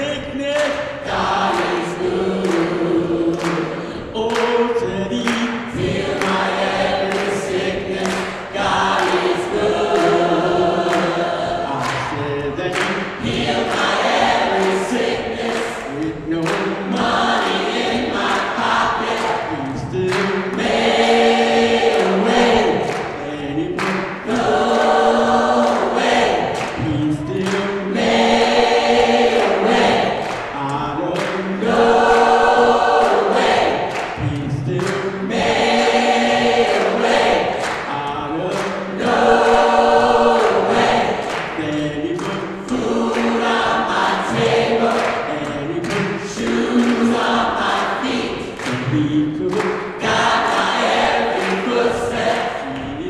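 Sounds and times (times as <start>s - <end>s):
gospel choir singing: 0.0s - 53.0s.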